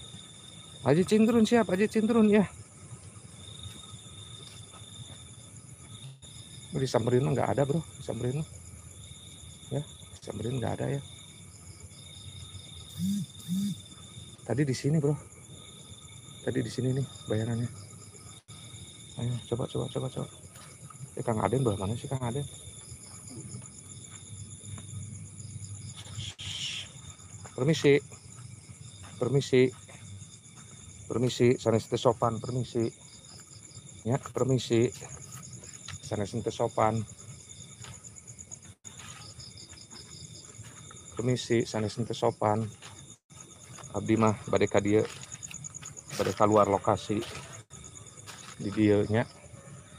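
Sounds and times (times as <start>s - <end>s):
fast pulsed insect chirp: 0.0s - 49.9s
steady high insect trill: 0.0s - 49.9s.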